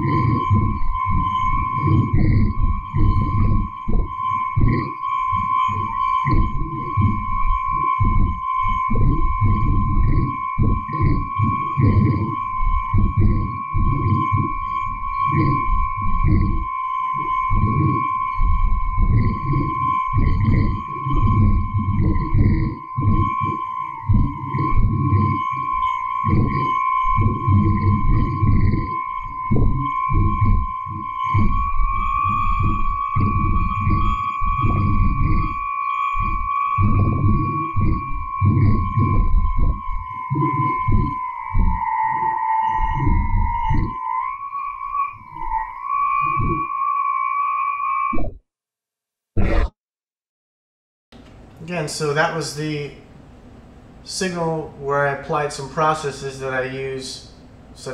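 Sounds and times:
choppy low interference bursts: 0.0 - 16.6, 17.6 - 44.0
wavering radio whistle: 0.0 - 48.4.

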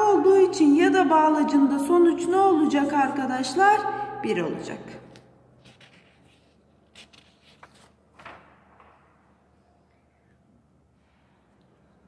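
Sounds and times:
paper sheets rustling: 5.6 - 8.6.

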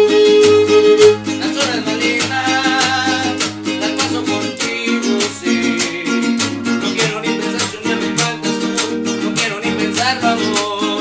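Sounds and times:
violin playing: 0.0 - 1.3
strummed guitars: 0.0 - 11.0.

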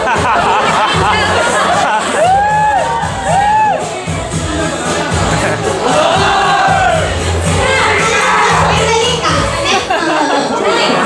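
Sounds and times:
audience cheering and shouting: 0.0 - 11.0
dance track with sung phrase: 0.2 - 11.0.

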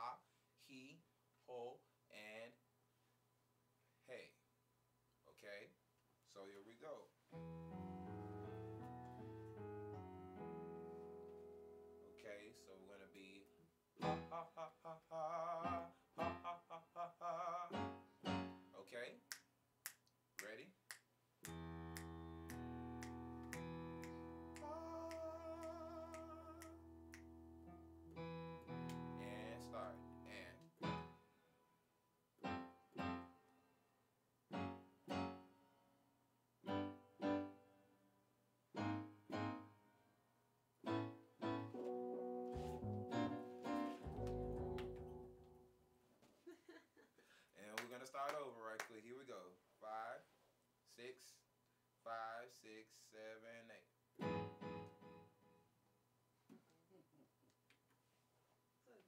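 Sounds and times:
keyboard piano chords: 7.4 - 14.4, 15.6 - 16.5, 17.7 - 18.9, 21.4 - 31.5, 32.4 - 33.7, 34.5 - 35.8, 36.6 - 38.0, 38.8 - 40.1, 40.8 - 46.0, 54.2 - 55.6
man singing staccato warm-up: 14.0 - 17.9, 23.5 - 27.2.

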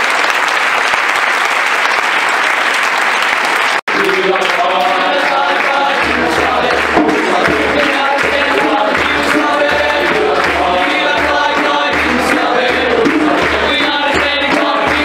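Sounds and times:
youth choir singing: 4.6 - 15.0.

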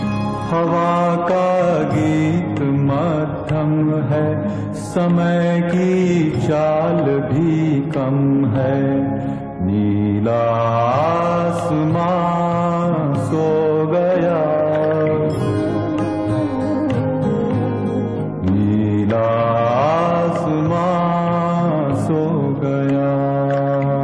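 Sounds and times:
instrumental accompaniment: 0.0 - 24.0
person singing gliding phrases: 0.0 - 24.0.

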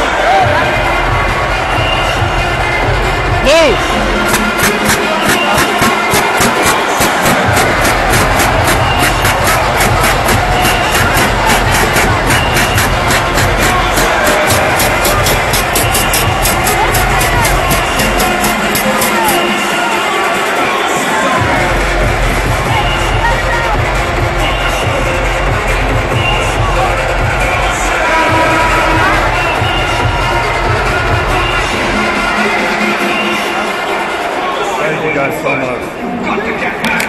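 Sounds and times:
crowd talking and cheering: 0.0 - 37.0
music over public address: 0.0 - 37.0
steady sharp clicks: 4.3 - 19.5.

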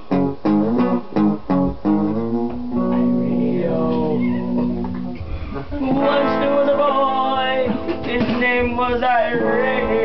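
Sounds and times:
electric guitar strumming: 0.0 - 10.0
person singing: 2.8 - 10.0.

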